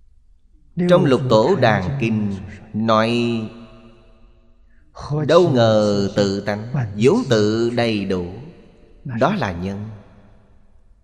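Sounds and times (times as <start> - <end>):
man speaking: 0.8 - 3.5, 5.0 - 8.5, 9.1 - 9.9.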